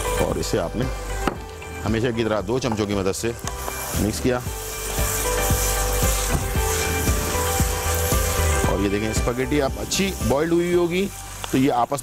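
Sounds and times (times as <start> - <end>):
background music: 0.0 - 12.0
faint sizzle: 3.4 - 12.0.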